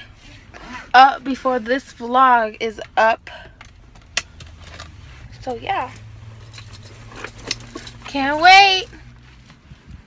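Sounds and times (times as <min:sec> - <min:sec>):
low hum inside car: 0:00.0 - 0:10.0
light clicks and jingles: 0:04.4 - 0:09.6.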